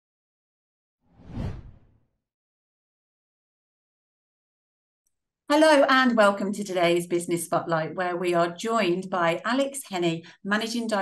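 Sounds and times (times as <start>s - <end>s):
low whoosh sound effect: 1.1s - 2.0s.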